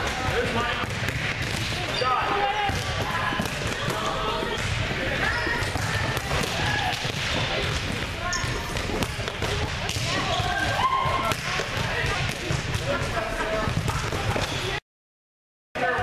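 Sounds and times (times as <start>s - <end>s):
volleyballs hit and bouncing: 0.0s - 14.8s.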